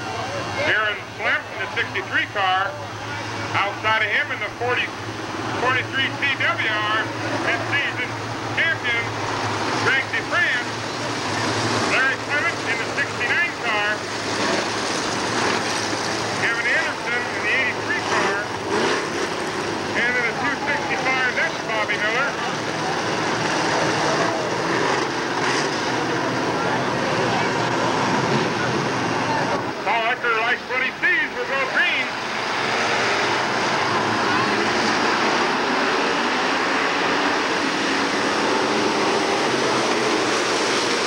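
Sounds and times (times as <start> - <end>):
race car engines droning: 0.0 - 41.0
spectators' voices: 0.0 - 41.0.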